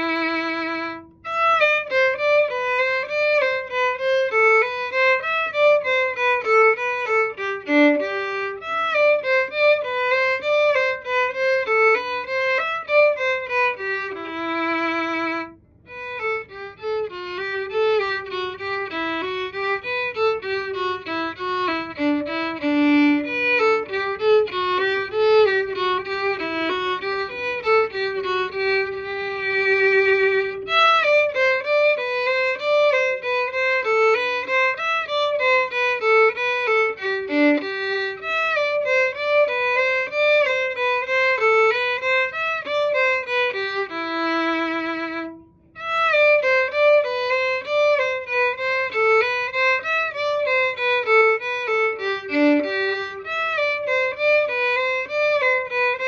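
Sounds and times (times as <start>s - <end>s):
solo violin melody: 0.0s - 56.0s.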